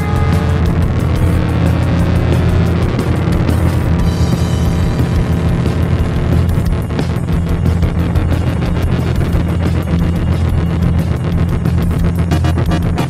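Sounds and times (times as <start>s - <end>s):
heavy sustained bass: 0.0s - 13.0s
noisy rock band: 0.0s - 13.0s
steady drum beat: 0.0s - 13.0s.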